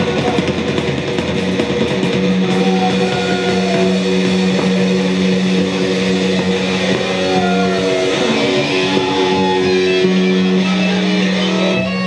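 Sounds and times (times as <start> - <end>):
distorted guitars droning note: 0.0 - 12.0.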